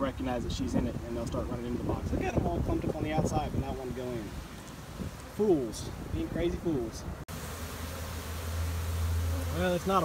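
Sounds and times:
bee swarm buzzing: 0:07.3 - 0:10.0.

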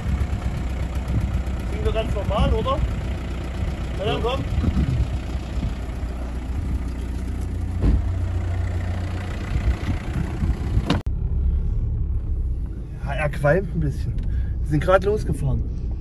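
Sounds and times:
diesel engine rumbling: 0:00.0 - 0:16.0
engine and road noise inside car: 0:00.0 - 0:16.0
thump: 0:07.8 - 0:08.2.

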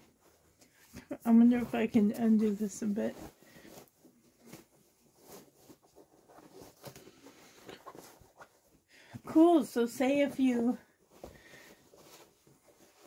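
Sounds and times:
fabric rustling: 0:00.0 - 0:13.0.

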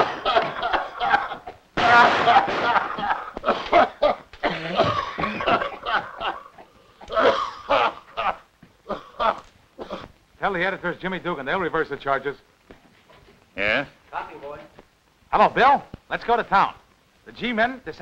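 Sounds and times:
men coughing and choking: 0:00.0 - 0:10.2.

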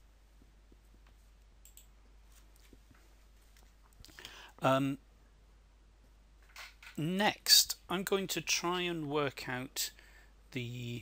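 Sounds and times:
faint clicks: 0:00.7 - 0:01.9.

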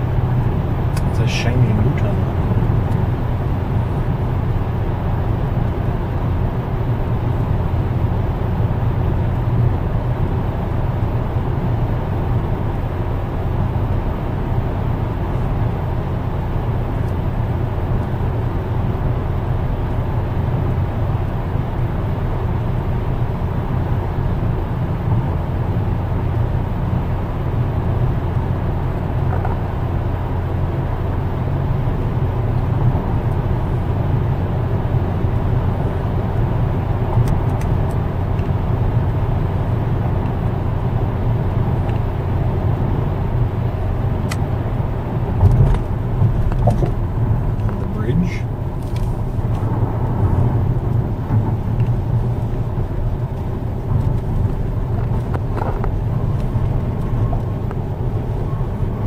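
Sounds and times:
car interior road and engine rumble: 0:00.0 - 0:59.0.

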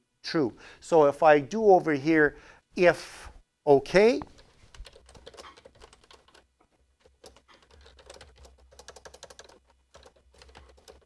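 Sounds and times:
faint keyboard typing: 0:04.2 - 0:11.0.

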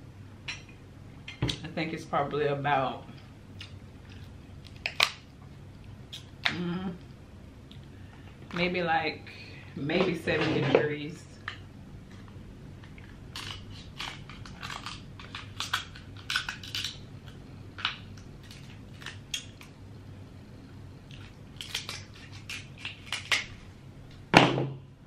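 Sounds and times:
chewing crab meat crunches: 0:12.0 - 0:19.8, 0:21.0 - 0:23.7.

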